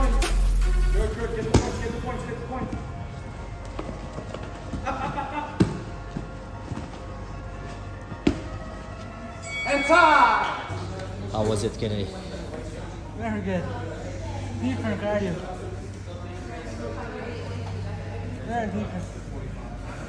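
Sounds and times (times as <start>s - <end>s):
background music with heavy bass: 0.0s - 3.1s
bodies thumping on foam mat: 3.6s - 8.9s.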